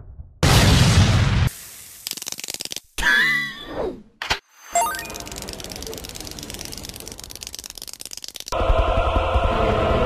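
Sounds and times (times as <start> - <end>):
rapid rattling clicks: 2.0 - 2.9, 5.1 - 8.6.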